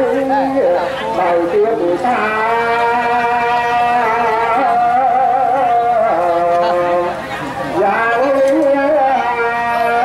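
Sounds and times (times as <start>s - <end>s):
man chanting a long note: 0.0s - 7.2s, 7.8s - 10.0s.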